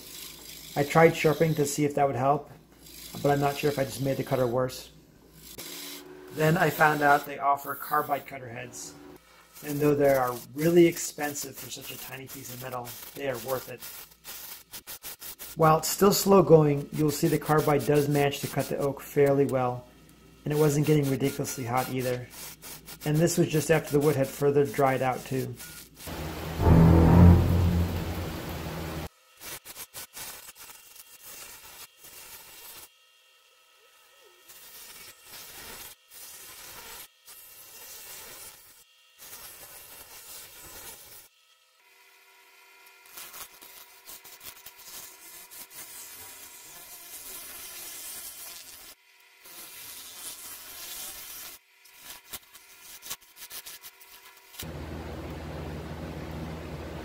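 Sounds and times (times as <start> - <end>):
loud low sound: 26.1 - 29.1, 54.7 - 57.0
steady music: 26.1 - 29.1
lathe tool cutting wood: 54.6 - 57.0.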